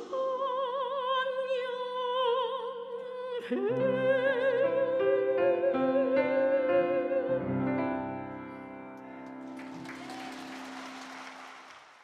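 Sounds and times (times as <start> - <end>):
congregation applauding: 9.1 - 12.0.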